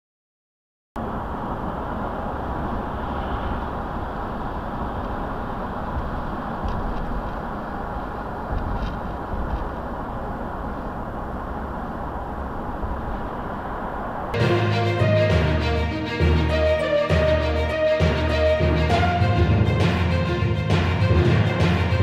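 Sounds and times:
car road and engine noise: 0:01.0 - 0:22.0.

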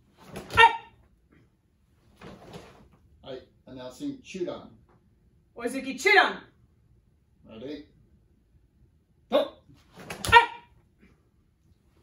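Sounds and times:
woman shouting: 0:00.5 - 0:00.9, 0:10.2 - 0:10.7.

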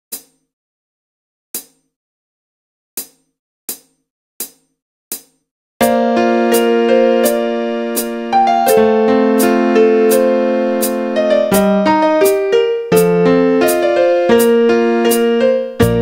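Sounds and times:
light ticking beat: 0:03.0 - 0:16.0
electric piano chords: 0:05.8 - 0:16.0.

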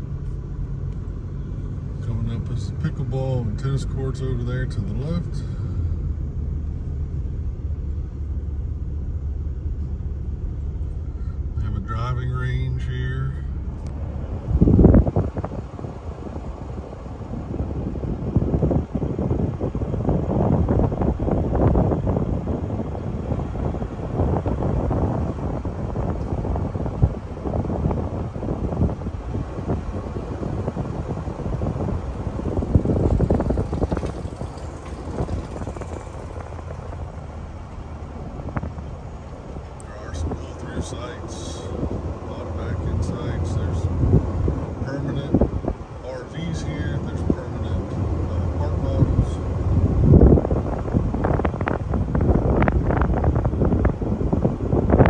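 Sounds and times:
engine and road hum: 0:00.0 - 0:55.0
wind and tyre noise: 0:00.0 - 0:55.0.

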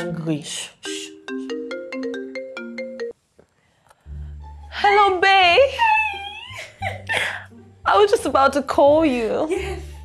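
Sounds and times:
phone ringtone melody: 0:00.9 - 0:03.2.

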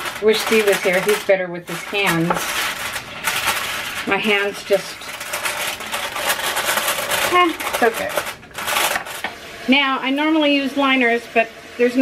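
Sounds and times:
aluminium foil crinkling: 0:00.0 - 0:09.5.

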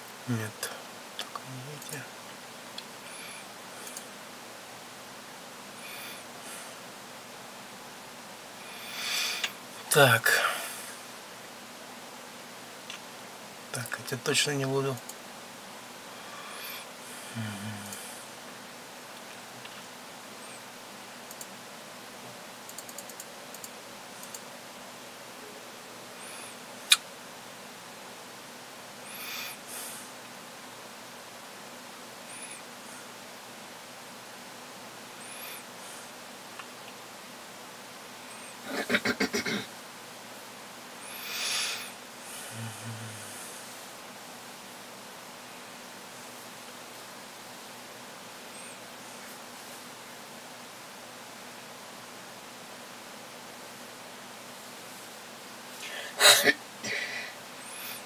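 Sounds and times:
steady low hiss: 0:00.0 - 0:58.0.

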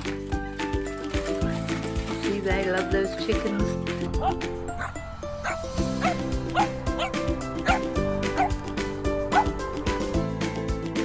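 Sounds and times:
background music: 0:00.0 - 0:11.0
small dogs yipping: 0:04.1 - 0:08.6, 0:09.3 - 0:09.6.

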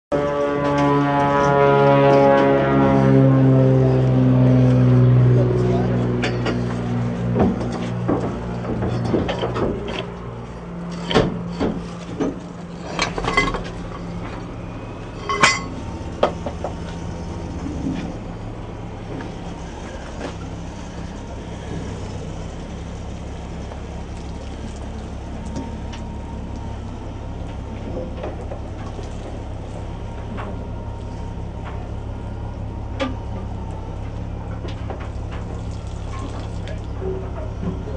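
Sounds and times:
machinery humming: 0:00.1 - 0:37.9
metal clanks and knocks: 0:05.5 - 0:24.0, 0:25.1 - 0:37.9.

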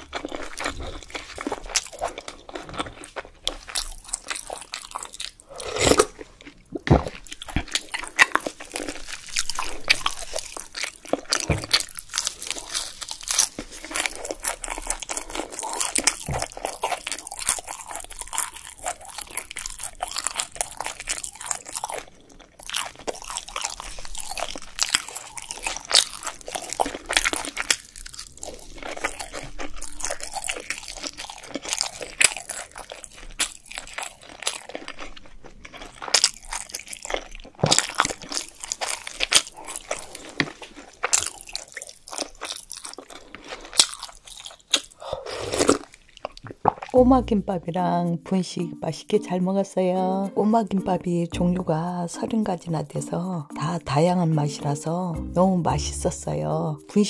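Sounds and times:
close-miked crunchy chewing: 0:00.0 - 0:48.0.

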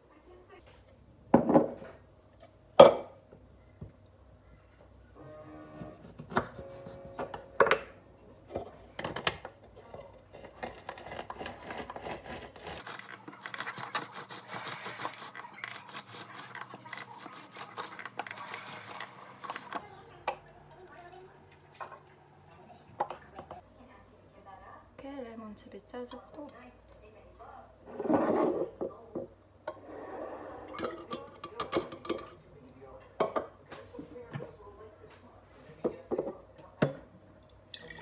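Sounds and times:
lemon squeezed on citrus juicer: 0:10.9 - 0:19.8.

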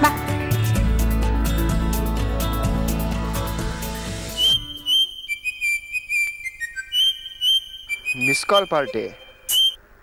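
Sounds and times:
background music: 0:00.0 - 0:05.2
whistled melody: 0:04.3 - 0:09.8.

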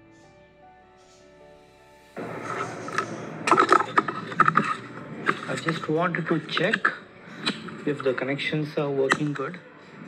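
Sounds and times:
rustling and scraping wires: 0:02.2 - 0:08.4.

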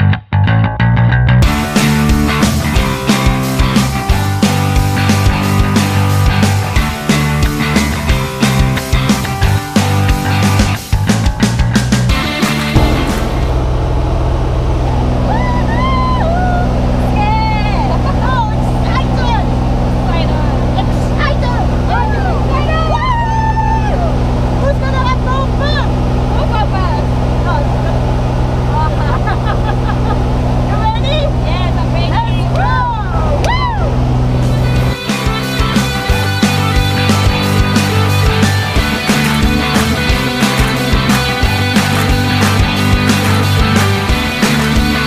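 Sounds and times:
rock music: 0:00.0 - 0:16.0, 0:33.0 - 0:45.0
small plane engine droning: 0:12.2 - 0:45.0
voices talking: 0:15.4 - 0:34.0.

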